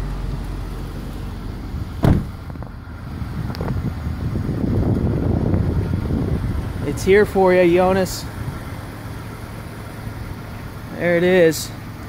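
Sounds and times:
low background rumble: 0.0s - 12.0s
thump: 2.0s - 2.7s.

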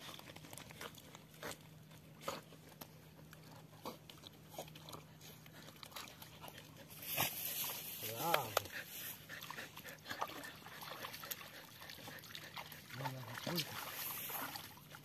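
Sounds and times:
splashing in shallow water: 3.3s - 15.0s.

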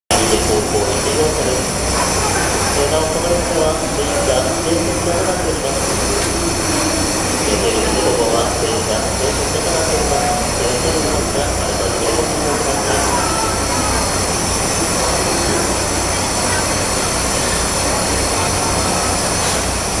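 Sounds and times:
crowd talking: 0.1s - 20.0s
steam locomotive hissing steam: 0.1s - 20.0s.

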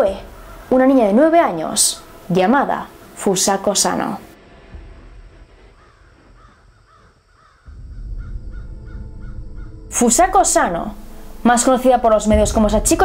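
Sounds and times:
bird harsh calls: 0.0s - 3.3s, 5.7s - 10.0s
low rumble: 4.2s - 6.9s, 7.7s - 13.0s.

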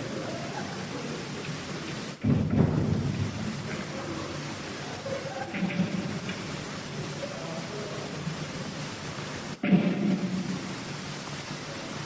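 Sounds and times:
faint crowd murmur: 0.0s - 10.3s
tape hiss: 0.0s - 12.0s.

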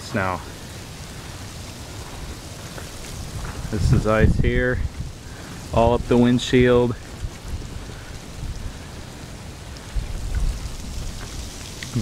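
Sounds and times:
freezing rain hiss: 0.0s - 12.0s
wind rumble on microphone: 0.6s - 12.0s.

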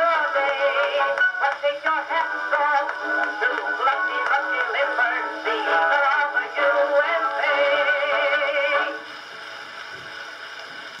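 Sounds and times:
singer and band with vibrato: 0.0s - 9.1s
faint record surface hiss: 0.0s - 11.0s.

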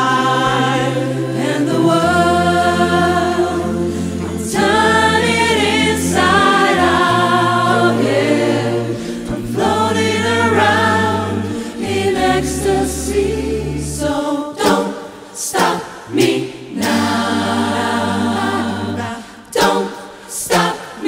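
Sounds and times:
low bass vocal line: 0.0s - 14.1s
a cappella choir singing: 0.0s - 21.0s.

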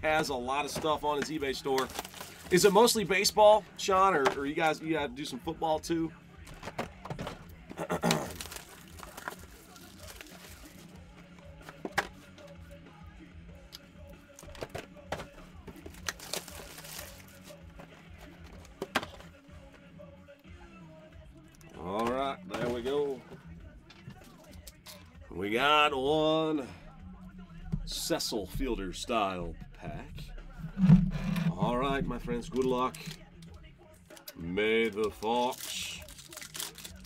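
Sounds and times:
quiet background music: 0.0s - 37.0s
foil packs rustling: 0.6s - 3.2s, 7.8s - 11.0s, 15.7s - 19.2s, 34.1s - 37.0s.

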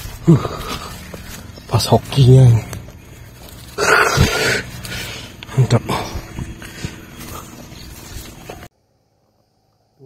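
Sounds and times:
rustling: 0.0s - 8.7s.

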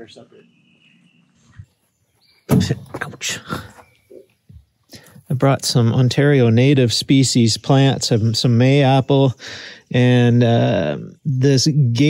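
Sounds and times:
loud thump: 2.5s - 3.2s.

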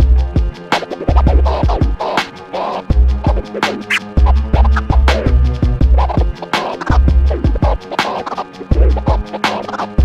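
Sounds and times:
hip hop beat: 0.0s - 10.0s
turntable scratching: 0.3s - 10.0s.

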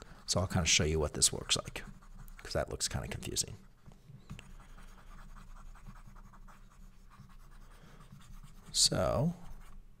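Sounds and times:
stylus rubbing on tablet screen: 0.0s - 9.8s.

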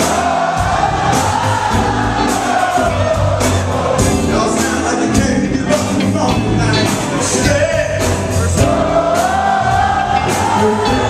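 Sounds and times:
funk band playing: 0.0s - 11.0s.

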